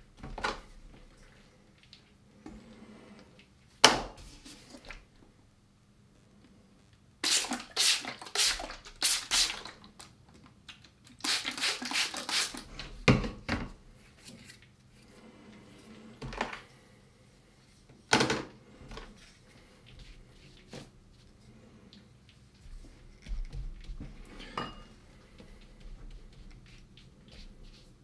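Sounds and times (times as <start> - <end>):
spray bottle squirting: 7.2 - 9.8, 11.2 - 12.7.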